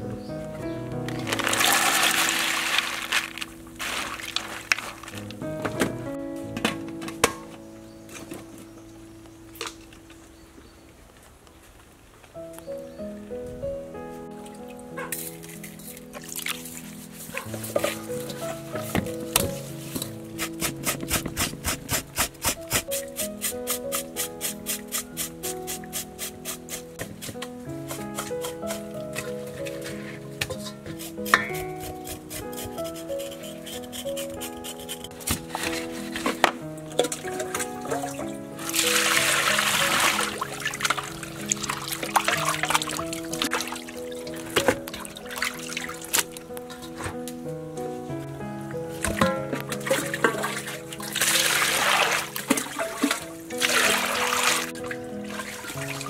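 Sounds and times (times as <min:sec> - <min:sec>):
background music: 0:00.0 - 0:10.4, 0:12.4 - 0:56.0
tap water splashing in metal basin: 0:36.2 - 0:43.8, 0:49.0 - 0:54.7.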